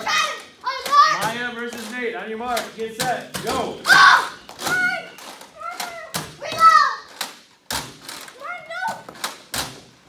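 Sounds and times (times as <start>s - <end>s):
children shouting and squealing: 0.0s - 1.4s, 3.8s - 7.1s.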